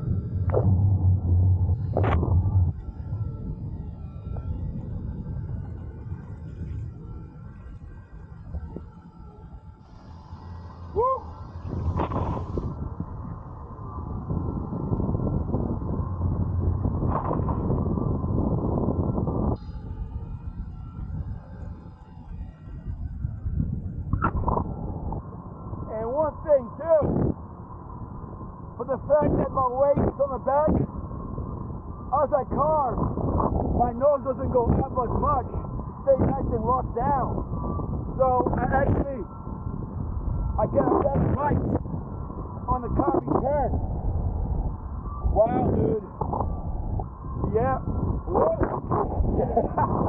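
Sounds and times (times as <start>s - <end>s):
wind rushing over microphone: 0.0s - 50.0s.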